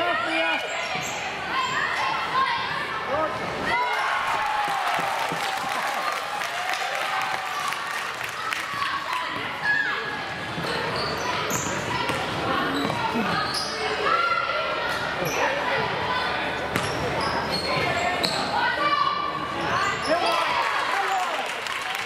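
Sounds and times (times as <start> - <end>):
sneakers squeaking: 0.2 - 2.6, 9.4 - 14.0, 15.2 - 18.7.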